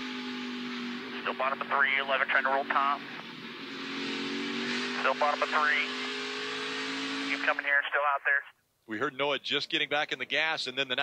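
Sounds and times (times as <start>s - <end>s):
race car engine running: 0.0s - 7.7s.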